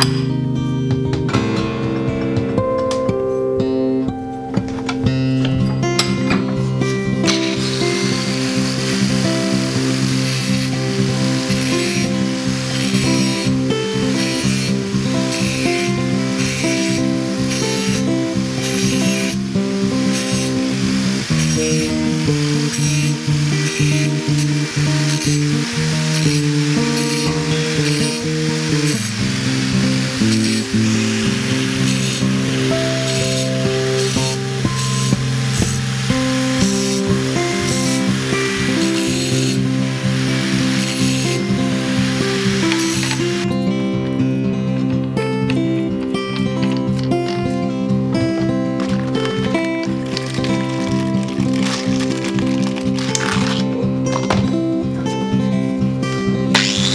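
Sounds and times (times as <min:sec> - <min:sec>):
background music: 0:00.0 - 0:56.9
angle grinder cutting steel: 0:05.4 - 0:44.2, 0:44.8 - 0:54.6, 0:56.5 - 0:56.9.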